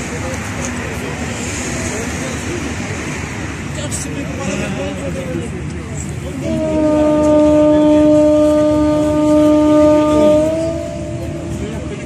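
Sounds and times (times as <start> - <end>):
ferry horn blast: 6.4 - 12.0.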